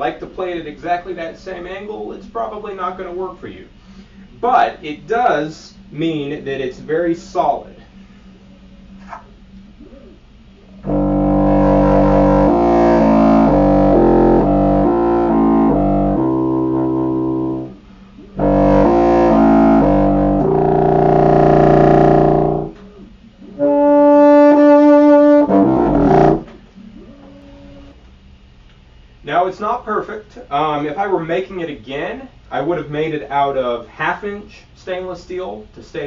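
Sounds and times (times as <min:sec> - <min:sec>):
contrabassoon low reed notes: 0:10.8 - 0:22.8, 0:23.5 - 0:28.0.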